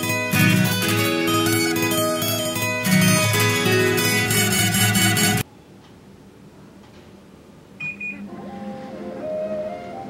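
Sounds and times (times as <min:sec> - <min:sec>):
air conditioner double beep: 0:07.8 - 0:08.3.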